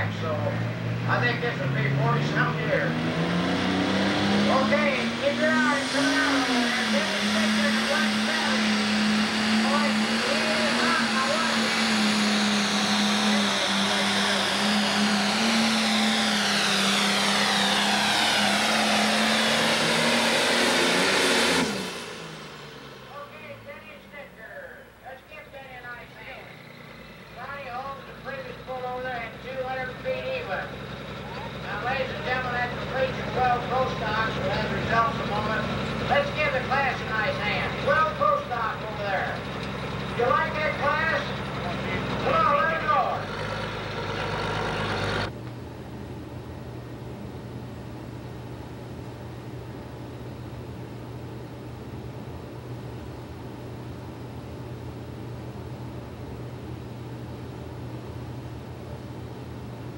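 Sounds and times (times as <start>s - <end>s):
people talking: 0.0s - 3.0s, 4.4s - 15.2s, 23.1s - 26.6s, 27.4s - 39.5s, 40.1s - 43.3s
steady low hum: 0.0s - 43.5s, 45.2s - 59.9s
diesel tractor idling: 4.5s - 54.1s.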